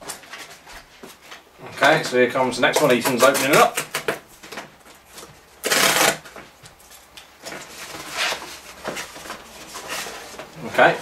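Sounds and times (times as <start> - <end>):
cardboard rustling and scraping: 2.6 - 11.0
cardboard package being torn open: 5.6 - 6.3.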